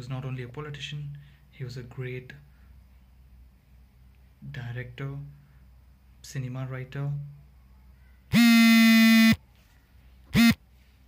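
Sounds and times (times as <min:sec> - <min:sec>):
electric buzz: 0:08.3 - 0:09.4, 0:10.3 - 0:10.6.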